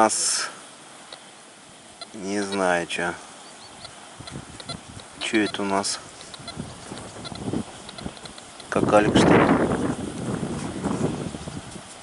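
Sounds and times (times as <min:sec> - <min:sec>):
geese honking: 0:01.9 - 0:02.8, 0:03.4 - 0:08.7.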